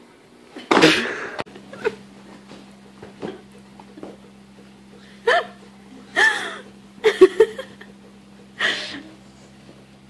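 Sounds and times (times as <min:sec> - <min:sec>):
person laughing: 0:05.0 - 0:08.0.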